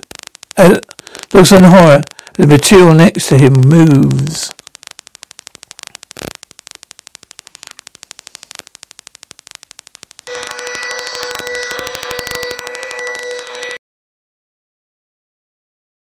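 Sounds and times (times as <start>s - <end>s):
electronic tone with pitched hum: 0.0s - 13.8s
rapid electronic ticking: 0.0s - 13.8s.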